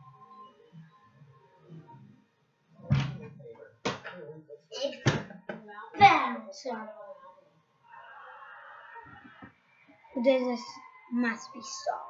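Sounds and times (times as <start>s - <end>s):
heavy thump: 2.9s - 3.3s.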